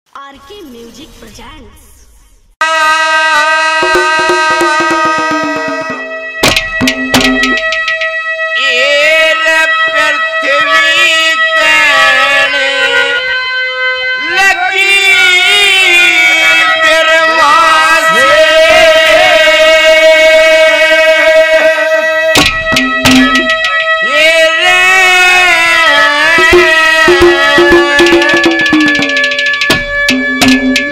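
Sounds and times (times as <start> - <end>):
man singing long wavering notes: 2.6 - 6.3, 8.5 - 29.1
harmonium drone: 2.7 - 30.9
music with clicking beat: 4.2 - 8.2, 22.4 - 24.0, 26.4 - 30.9.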